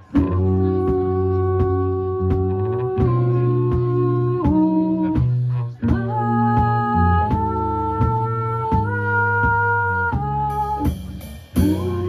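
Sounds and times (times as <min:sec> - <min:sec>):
live band playing: 0:00.0 - 0:12.0.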